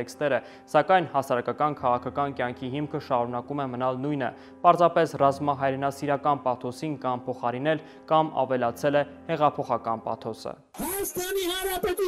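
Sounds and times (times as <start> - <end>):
man presenting news: 0.0 - 12.0.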